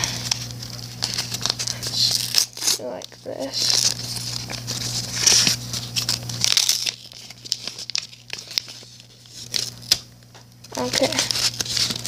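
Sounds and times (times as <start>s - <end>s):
cards rustling: 0.0s - 12.0s
paper ripping and crinkling: 0.0s - 12.0s.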